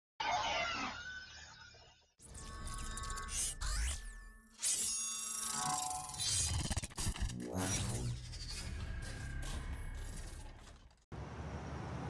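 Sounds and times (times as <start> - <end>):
steady electronic tones: 2.2 - 11.0.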